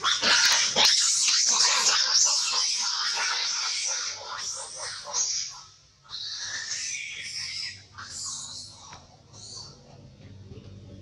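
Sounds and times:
monkeys screaming: 0.0 - 9.8.

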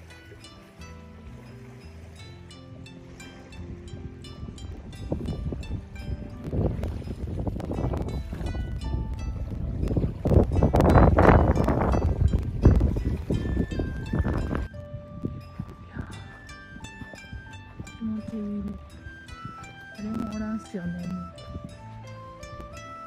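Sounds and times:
soft background music: 0.0 - 23.0
wind rumbling on microphone: 0.0 - 23.0.

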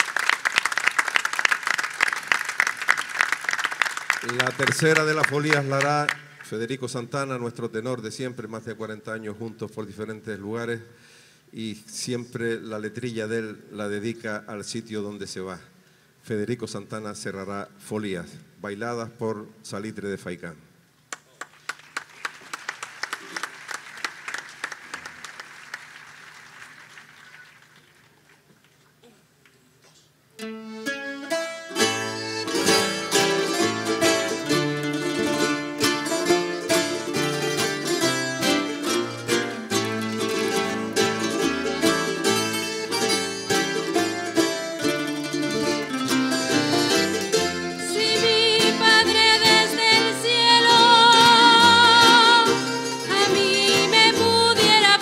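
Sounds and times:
audience applause: 0.0 - 6.6, 21.2 - 28.5
string band playing: 4.2 - 6.8, 30.4 - 55.0
person singing with wide vibrato: 47.4 - 55.0.

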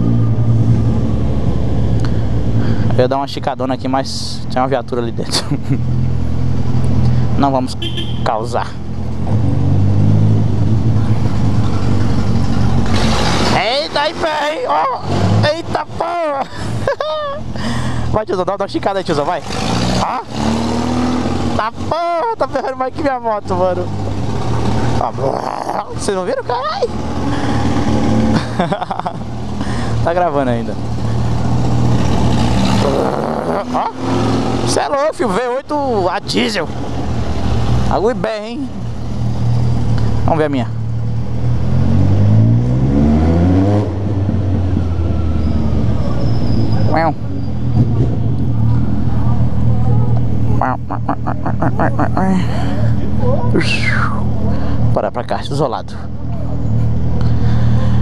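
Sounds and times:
person speaking: 13.5 - 24.0, 24.8 - 27.7, 32.6 - 36.9, 49.5 - 56.2.

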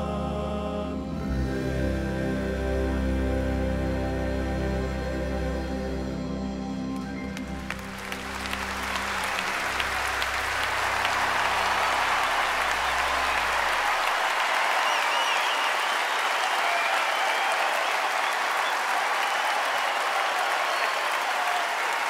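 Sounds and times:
audience applauding: 7.0 - 22.0.

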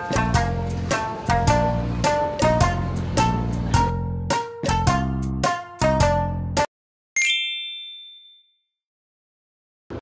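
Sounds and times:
bell-like ding: 7.2 - 8.7.

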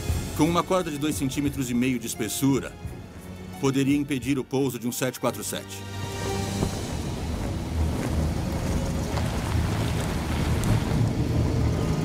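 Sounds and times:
background music: 0.0 - 12.0
wind rushing: 6.1 - 12.0
car engine rumbling: 6.2 - 12.0.

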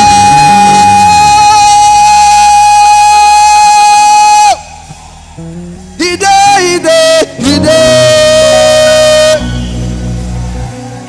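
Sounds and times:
gospel singing held high note: 0.0 - 11.0.

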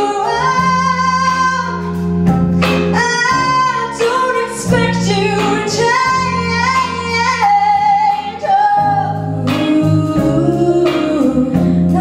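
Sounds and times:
girl singing into a microphone: 0.0 - 1.9, 2.9 - 12.0
live band drums and guitar: 0.0 - 12.0.

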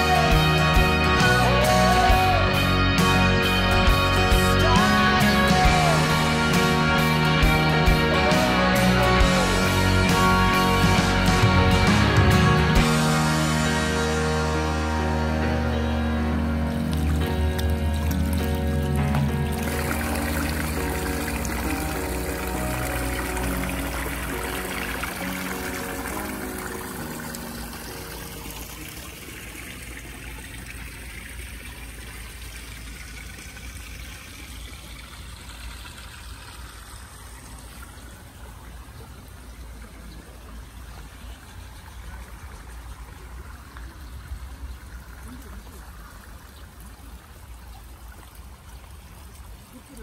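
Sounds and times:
water trickling into pond: 0.0 - 2.7, 3.5 - 10.6, 11.2 - 50.0
background music: 0.0 - 30.4.

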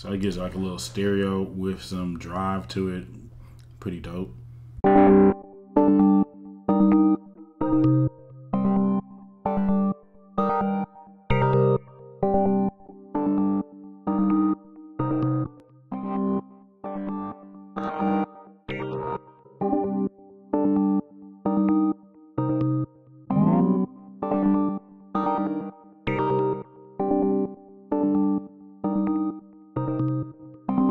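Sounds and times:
synth keyboard chords: 4.8 - 30.9
synth chord stabs: 20.6 - 29.2.

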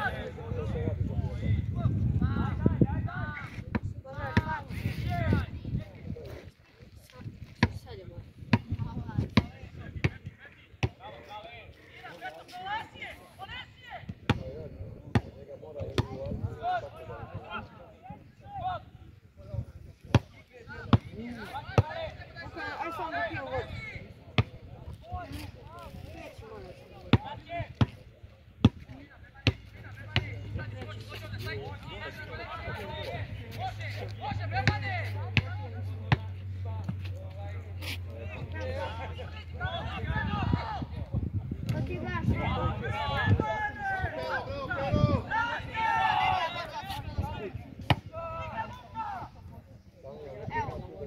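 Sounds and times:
distant players shouting: 42.4 - 49.4.

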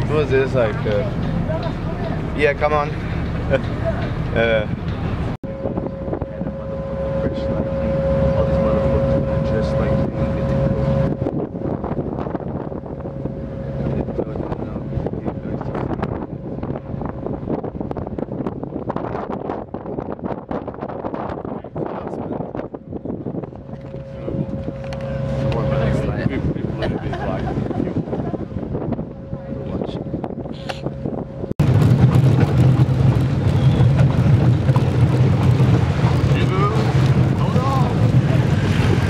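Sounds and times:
boat engine droning: 0.0 - 39.0
wind buffeting microphone: 0.0 - 39.0.

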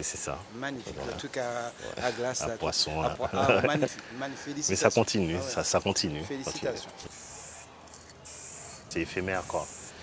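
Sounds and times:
spray paint can hissing: 7.1 - 10.0.

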